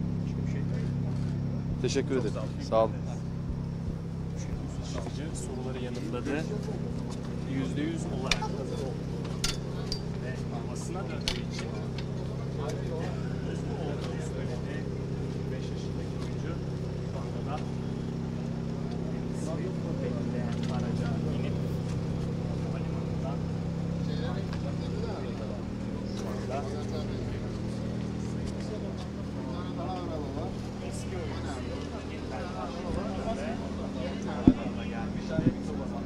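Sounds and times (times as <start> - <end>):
car engine idling: 0.0 - 36.0
people chattering: 0.0 - 36.0.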